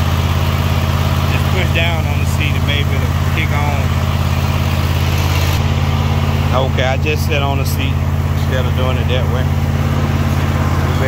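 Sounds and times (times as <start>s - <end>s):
lawn mower engine running: 0.0s - 11.0s.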